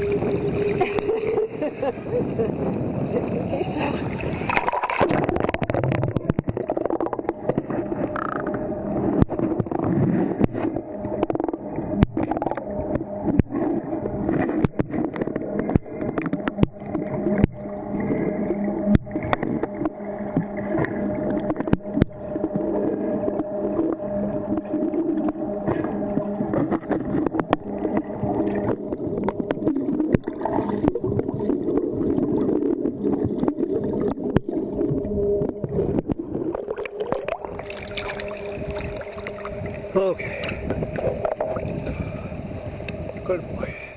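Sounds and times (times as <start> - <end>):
dog paddling underwater bubbles: 0.0 - 43.2
faint steady hum: 0.0 - 43.9.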